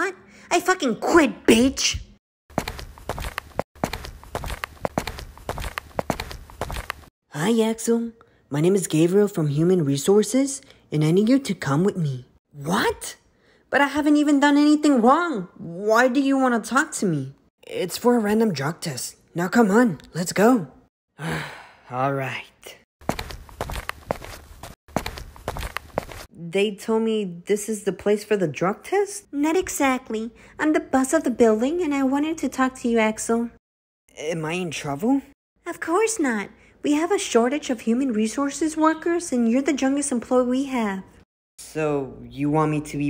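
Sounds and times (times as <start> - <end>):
quick clicking footsteps: 2.5 - 7.1, 23.0 - 26.3.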